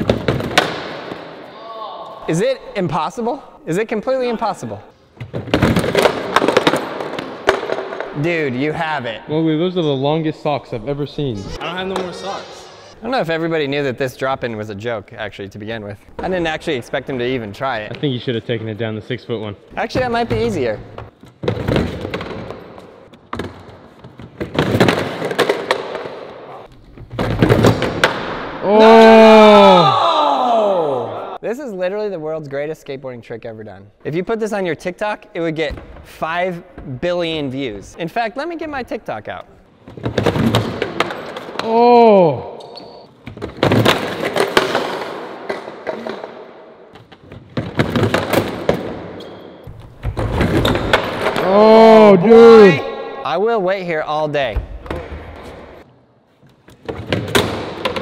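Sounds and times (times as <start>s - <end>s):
person shouting: 1.5s - 2.3s, 28.6s - 31.4s, 41.6s - 42.6s, 51.4s - 53.3s
man yelling: 28.6s - 31.4s, 41.6s - 42.6s, 51.4s - 53.4s.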